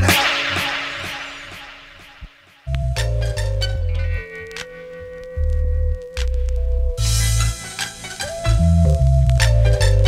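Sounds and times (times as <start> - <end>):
noise sweep: 0.0 - 3.1
hip-hop beat: 0.0 - 10.0.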